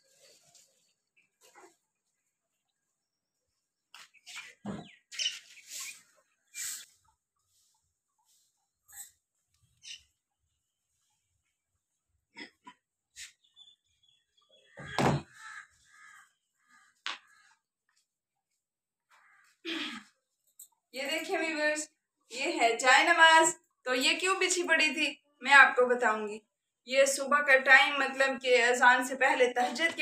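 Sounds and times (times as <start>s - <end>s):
loud knock: 14.9s - 15.3s.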